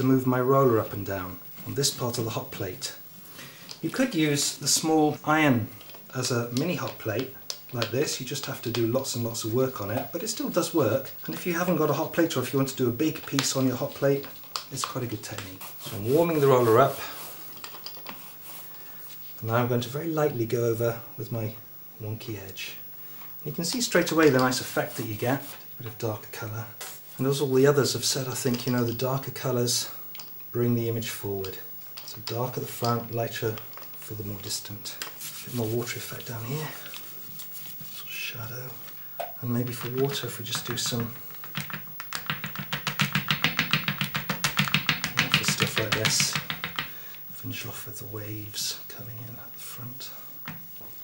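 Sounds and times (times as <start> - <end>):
pad rubbing on paper: 15.6 - 19.3, 24.6 - 25.7, 35.1 - 36.1, 36.9 - 38.2.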